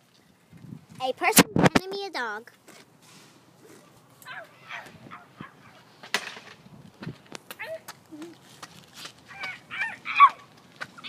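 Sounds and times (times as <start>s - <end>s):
child imitating dog barks: 4.2s - 5.5s, 7.6s - 8.4s, 9.3s - 10.5s.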